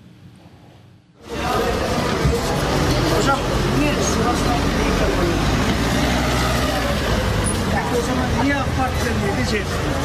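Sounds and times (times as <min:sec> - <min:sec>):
crowd talking: 0:01.2 - 0:10.0.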